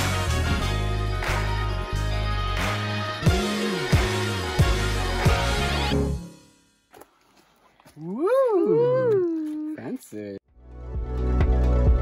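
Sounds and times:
person's wordless vocal call: 8.0 - 10.0.

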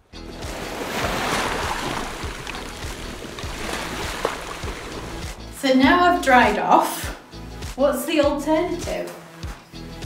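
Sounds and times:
background music: 0.0 - 10.0
rushing underwater water effect: 0.4 - 5.5.

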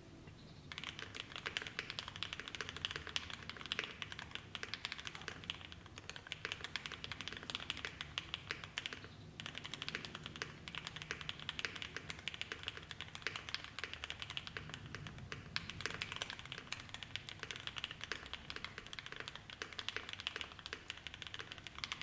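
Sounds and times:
mechanical keyboard typing: 0.7 - 22.0.

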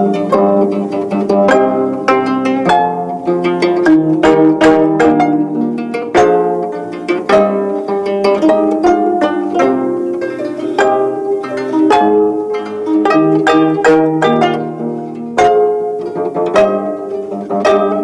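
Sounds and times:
plucked zithers playing: 0.0 - 18.0.

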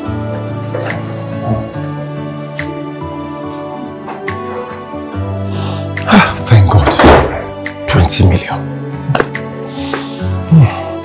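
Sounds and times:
background music: 0.0 - 11.0
door thudding shut: 6.8 - 7.6.

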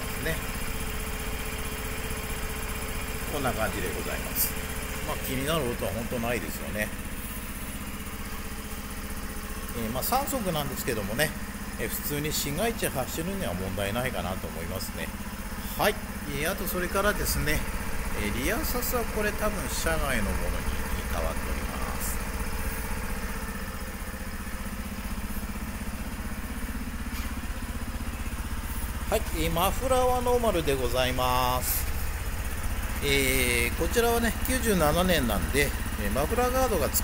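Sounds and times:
motorcycle engine idling: 0.0 - 37.0.

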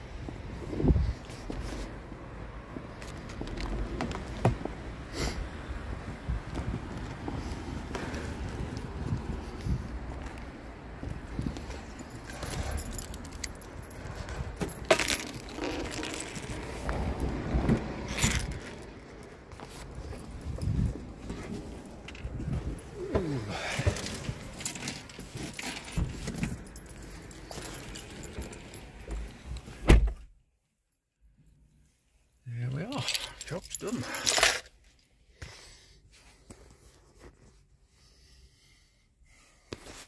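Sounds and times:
wind rumble on microphone: 0.0 - 1.8, 5.5 - 12.8, 16.3 - 19.1, 20.0 - 23.5
keys jangling: 11.6 - 16.6, 18.0 - 19.1, 23.3 - 29.4, 33.0 - 34.7.

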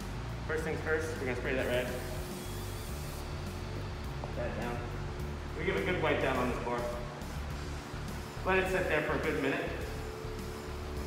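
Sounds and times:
background music: 0.0 - 11.0
aerosol spray hissing: 1.0 - 5.0.

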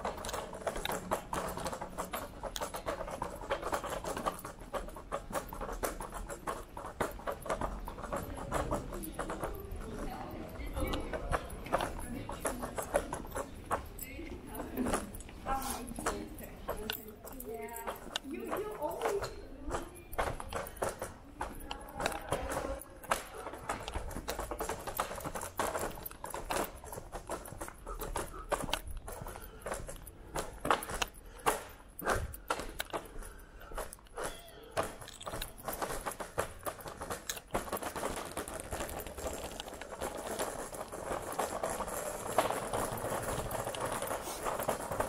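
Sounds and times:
scooter wheels rattling over cobblestones: 0.0 - 45.0.

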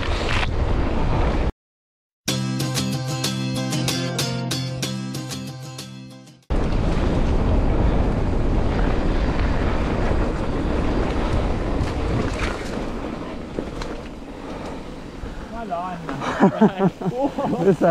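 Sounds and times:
music: 2.3 - 6.5
wind rushing over microphone: 6.5 - 16.3
tyres on gravel trail: 6.5 - 17.9.

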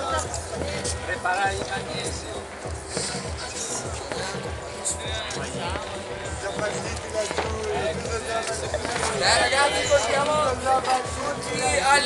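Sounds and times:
music playing: 0.0 - 12.0
people talking: 0.0 - 12.0.

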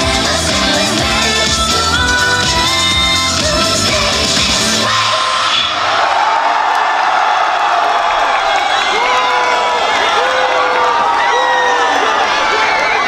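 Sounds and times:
pop song over sound system: 0.0 - 5.8
crowd cheering and screaming: 0.0 - 13.0.

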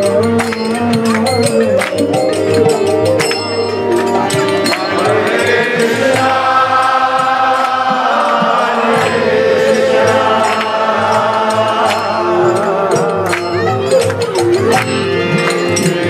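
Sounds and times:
drum and cymbal strokes: 0.0 - 16.0
harmonium: 0.0 - 16.0
many voices chanting: 4.0 - 13.9, 14.8 - 16.0.

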